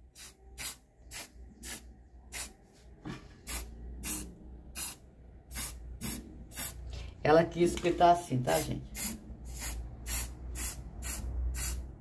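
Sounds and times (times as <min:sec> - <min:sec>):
spray can hissing bursts: 0:00.1 - 0:02.5, 0:03.5 - 0:06.8, 0:08.9 - 0:11.9.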